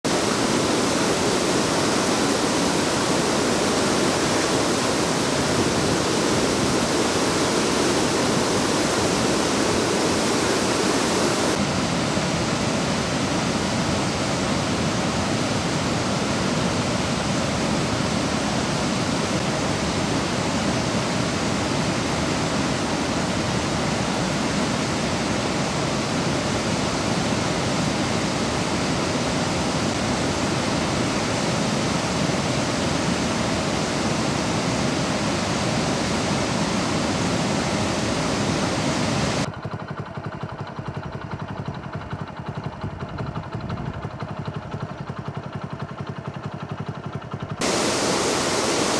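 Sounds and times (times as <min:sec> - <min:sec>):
water rushing over weir: 0:00.0 - 0:39.5, 0:47.6 - 0:48.9.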